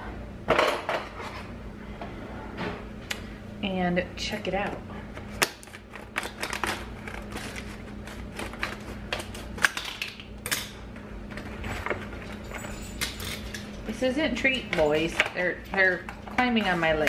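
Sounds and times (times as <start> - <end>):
scissors cutting plastic packaging: 5.4 - 10.7.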